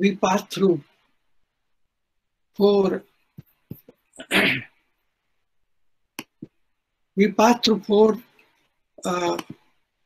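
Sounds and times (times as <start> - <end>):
man coughing: 4.2 - 4.8.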